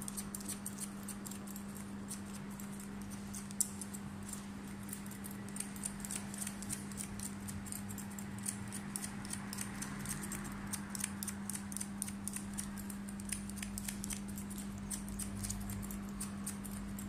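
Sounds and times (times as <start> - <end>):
scissors snipping hair: 0.0 - 17.0
steady low hum: 0.0 - 17.0.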